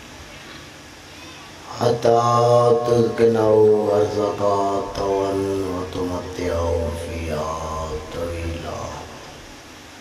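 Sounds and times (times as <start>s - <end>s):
low steady hum: 0.0s - 10.0s
man chanting into a microphone: 1.6s - 9.4s.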